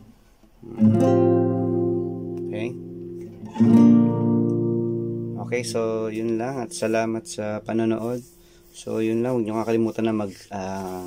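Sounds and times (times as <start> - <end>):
classical guitar chords strummed: 0.6 - 8.0.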